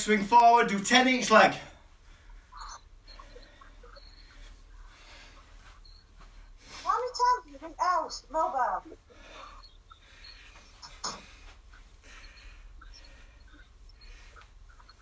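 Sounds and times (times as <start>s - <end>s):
person's voice: 0.0s - 1.7s, 6.8s - 9.0s.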